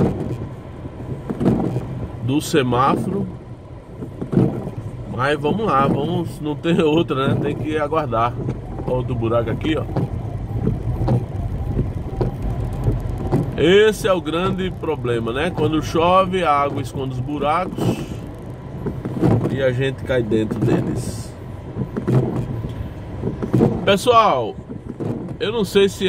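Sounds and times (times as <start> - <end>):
car engine and road hum: 0.0 - 26.0
rain on car: 0.0 - 26.0
windshield wipers sweeping: 0.0 - 26.0
man talking: 2.2 - 3.4, 5.1 - 10.0, 13.6 - 18.3, 19.5 - 21.4, 23.8 - 24.6, 25.4 - 26.0.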